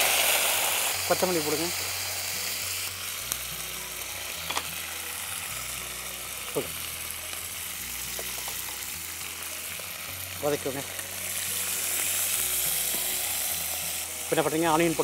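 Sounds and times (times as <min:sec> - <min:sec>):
leaves sizzling in hot oil: 0:00.0 - 0:15.0.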